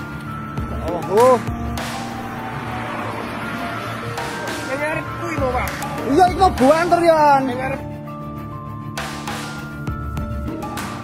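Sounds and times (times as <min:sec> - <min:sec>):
vehicle road noise: 0:00.0 - 0:07.9
background music with held notes: 0:00.0 - 0:11.0.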